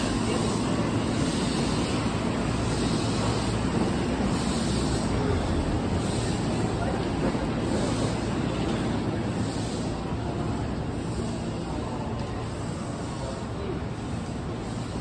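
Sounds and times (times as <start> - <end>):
electric train fans humming: 0.0 - 15.0.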